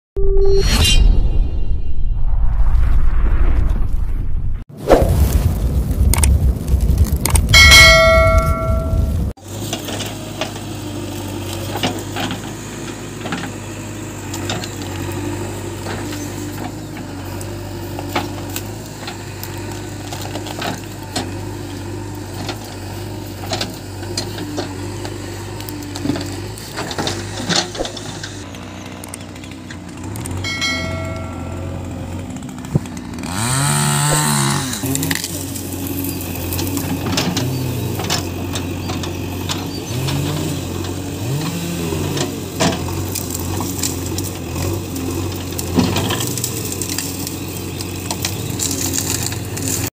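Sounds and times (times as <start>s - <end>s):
branches and roots snapping: 4.8s - 9.0s, 17.3s - 49.9s
backhoe diesel engine running: 7.2s - 49.9s.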